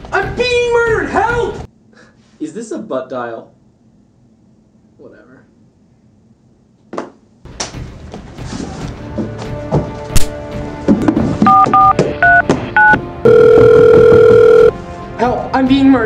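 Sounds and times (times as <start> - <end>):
phone keypad tones: 11.5 - 14.7
phone ringing tone: 11.5 - 14.8.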